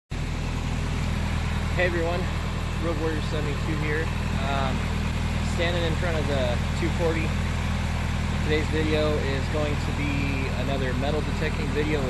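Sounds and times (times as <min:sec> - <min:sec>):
car engine idling: 0:00.1 - 0:12.0.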